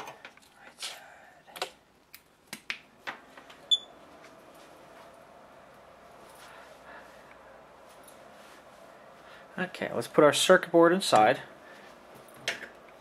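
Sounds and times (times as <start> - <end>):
faint steady hum: 0.0 - 13.0.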